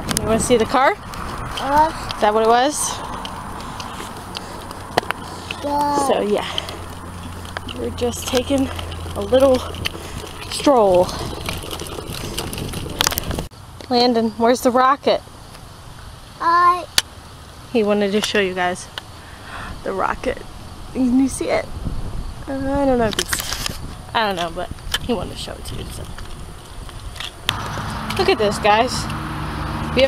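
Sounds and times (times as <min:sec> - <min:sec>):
woman's voice: 0:00.0 - 0:01.0, 0:01.6 - 0:03.1, 0:05.8 - 0:06.8, 0:07.7 - 0:09.8, 0:10.5 - 0:11.2, 0:13.8 - 0:15.2, 0:17.7 - 0:18.9, 0:19.5 - 0:21.7, 0:22.4 - 0:23.4, 0:24.1 - 0:26.1, 0:28.1 - 0:29.2
wind on microphone: 0:00.0 - 0:13.5, 0:19.6 - 0:30.0
stroller wheels rolling on pavement: 0:00.0 - 0:16.1, 0:21.0 - 0:30.0.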